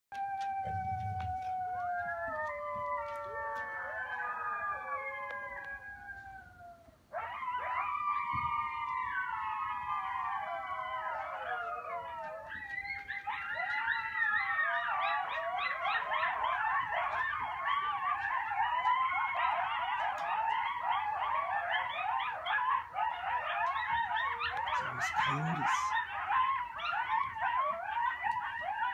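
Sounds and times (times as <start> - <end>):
coyotes howling: 0.1 - 28.9
coyotes yipping rapidly: 7.1 - 28.9.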